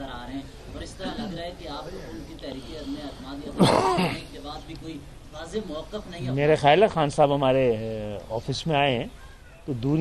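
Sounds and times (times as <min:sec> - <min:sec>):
man coughing: 0:03.6 - 0:04.3.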